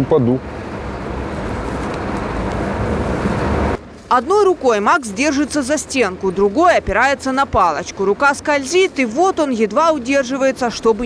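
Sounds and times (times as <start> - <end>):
traffic rushing and rumbling: 0.0 - 11.0.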